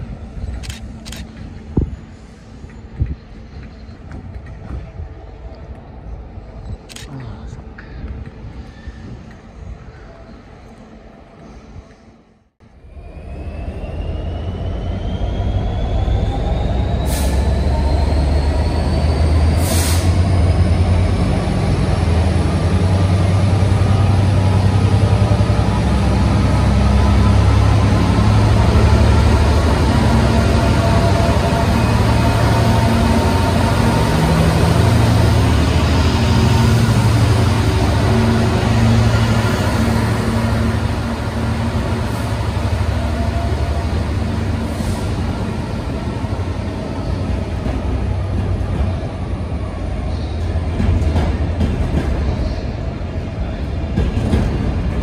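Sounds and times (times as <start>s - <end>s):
diesel locomotive engine: 0.0s - 55.0s
rising whine: 12.7s - 19.6s.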